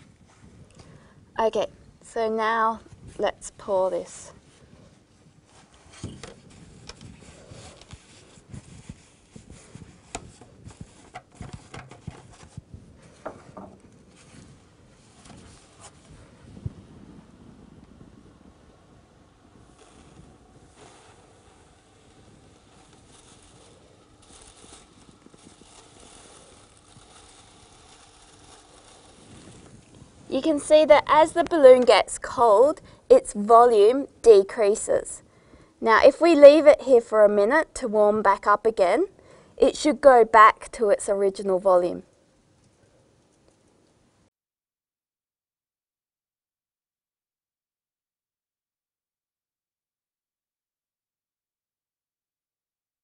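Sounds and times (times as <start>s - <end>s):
faint hiss of boiling nitrogen: 0.0s - 44.3s.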